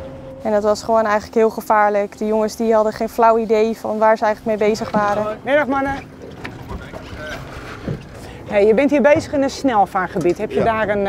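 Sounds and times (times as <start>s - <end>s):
boat motors running low: 0.0s - 11.0s
water noise: 0.0s - 11.0s.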